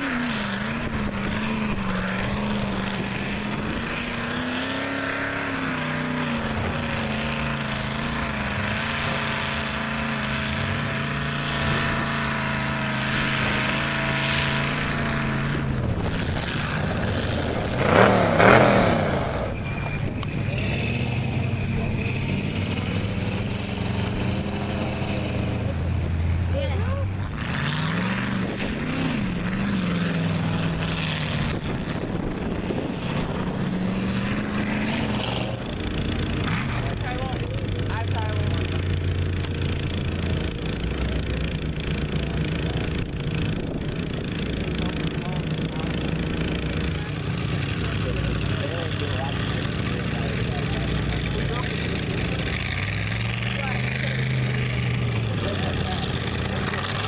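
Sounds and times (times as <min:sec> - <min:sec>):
truck engines revving in mud: 0:00.0 - 0:57.0.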